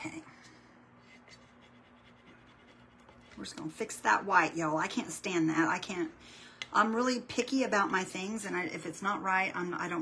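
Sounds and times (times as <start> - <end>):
low steady hum: 0.0 - 10.0
fingertips scratching paper: 1.2 - 3.5.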